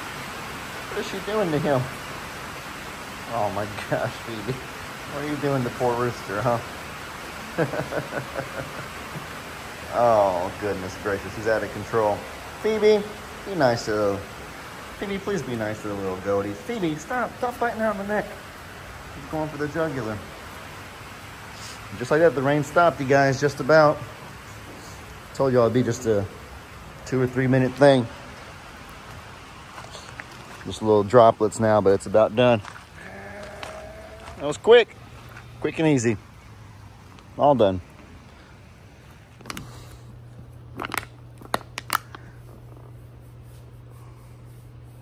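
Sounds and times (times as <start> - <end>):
heavy rain hissing: 0.0 - 40.4.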